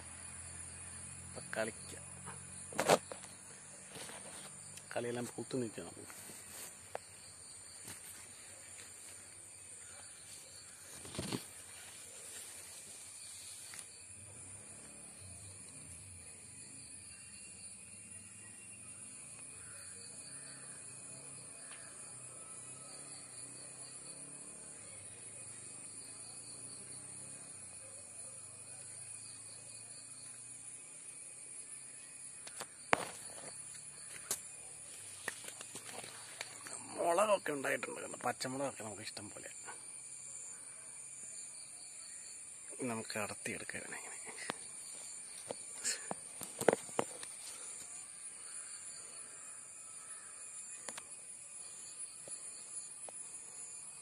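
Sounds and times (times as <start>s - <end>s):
high-pitched insect drone: 0.0s - 54.0s.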